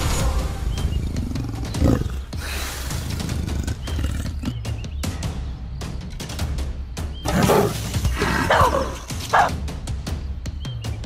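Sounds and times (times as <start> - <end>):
deep animal growl: 1.0 - 4.7.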